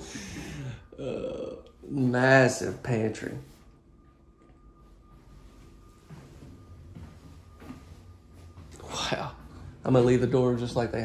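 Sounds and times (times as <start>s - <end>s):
faint low hum: 0.0s - 11.0s
thin steady high tone: 0.0s - 11.0s.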